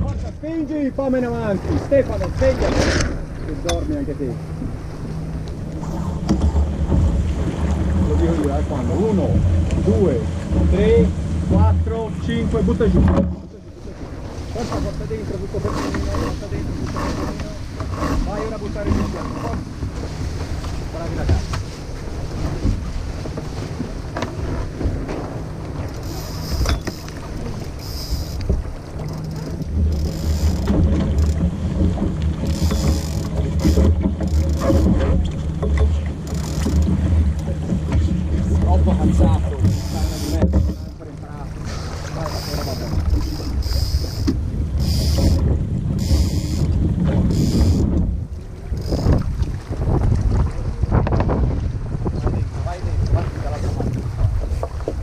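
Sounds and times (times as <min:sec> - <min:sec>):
water rushing along hull: 0:00.0 - 0:55.0
wind buffeting microphone: 0:00.0 - 0:55.0.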